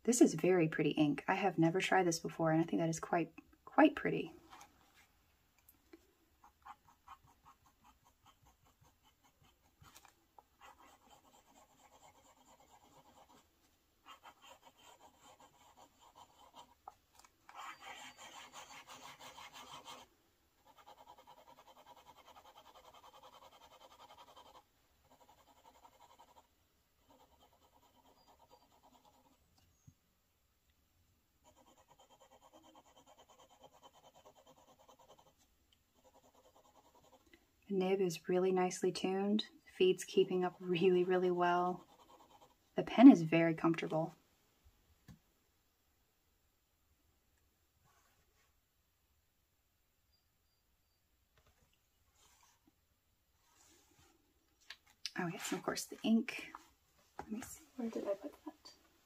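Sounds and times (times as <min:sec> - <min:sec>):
pen nib scratching on paper: 0:06.4 - 0:29.4, 0:31.4 - 0:37.4, 0:39.8 - 0:43.8.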